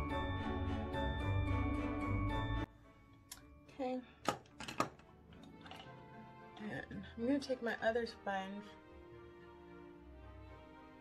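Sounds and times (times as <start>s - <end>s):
soft background music: 0.0s - 11.0s
tools tapping on tabletop: 4.2s - 5.0s.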